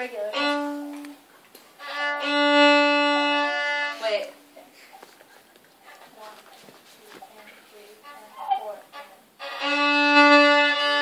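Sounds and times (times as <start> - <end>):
violins holding long note: 1.8 - 4.2, 8.0 - 11.0.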